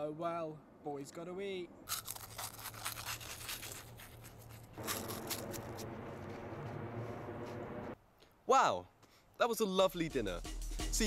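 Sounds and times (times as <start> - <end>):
corn snacks crunching: 1.9 - 6.3.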